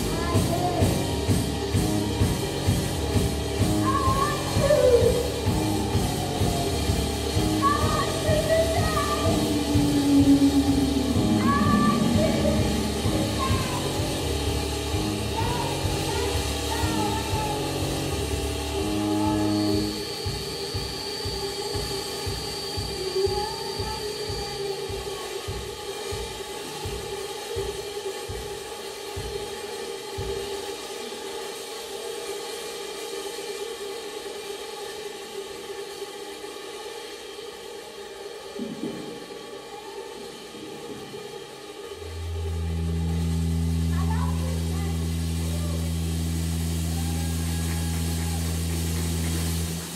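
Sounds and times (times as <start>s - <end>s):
deep synth bass chord: 0.0s - 20.0s, 41.9s - 49.9s
low pulse: 0.0s - 27.7s, 38.6s - 49.9s
held synth chords: 0.0s - 30.3s, 38.6s - 49.9s
steady drone: 0.0s - 49.9s.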